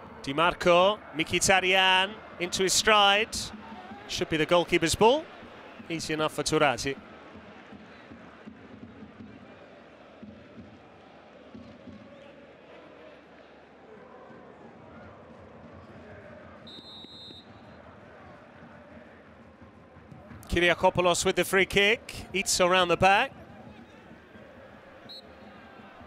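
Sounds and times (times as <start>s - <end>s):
stadium crowd hum: 0.0s - 26.0s
high-pitched whistle: 16.7s - 17.5s.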